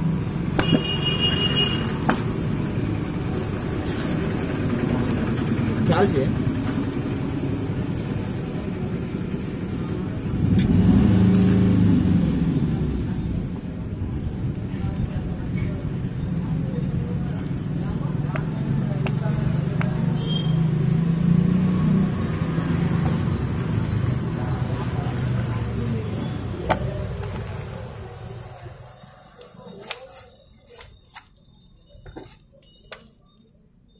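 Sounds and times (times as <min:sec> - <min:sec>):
vehicle engine rumble: 0:00.0 - 0:30.6.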